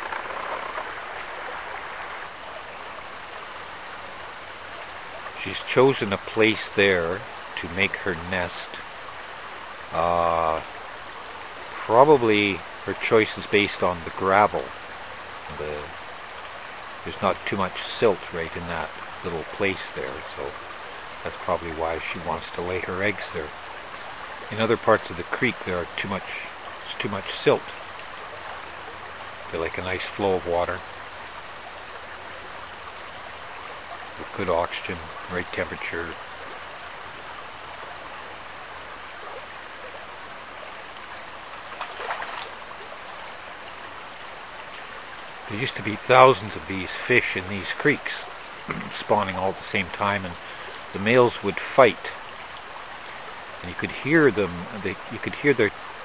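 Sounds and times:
creek water running over rocks: 0:00.0 - 0:56.0.

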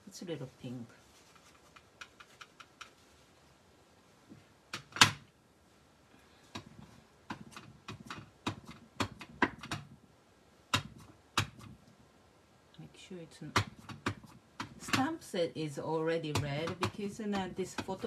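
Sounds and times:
plastic clicks and taps: 0:06.5 - 0:10.0, 0:10.7 - 0:11.8, 0:13.5 - 0:15.1, 0:16.3 - 0:18.0.

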